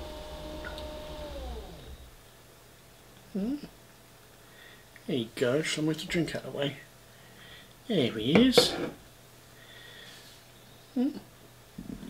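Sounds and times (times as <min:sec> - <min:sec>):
electric motor whining: 0:00.0 - 0:02.2.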